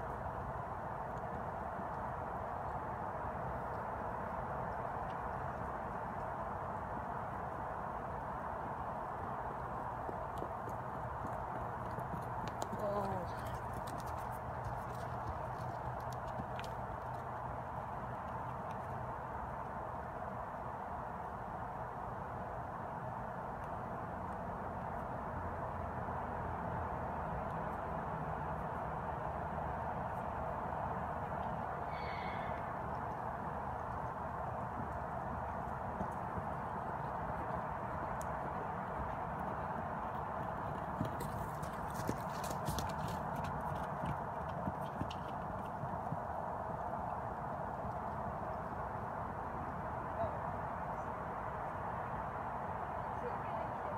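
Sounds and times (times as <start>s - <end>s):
horse hoofbeats on dirt: 8.2s - 19.1s, 30.9s - 48.6s.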